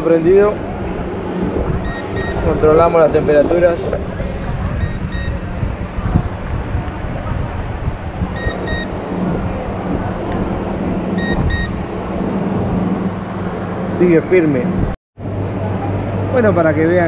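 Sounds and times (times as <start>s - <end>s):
fan motor humming: 0.0s - 17.0s
thermometer short high beeps: 1.8s - 2.5s, 4.8s - 5.4s, 8.4s - 8.9s, 11.2s - 11.8s.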